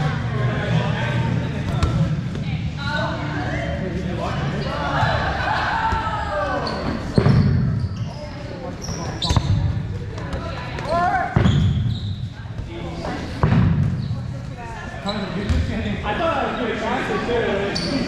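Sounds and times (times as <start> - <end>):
dodgeballs thudding in a gym: 0.0 - 3.4, 4.7 - 16.2
players shouting: 4.6 - 7.0.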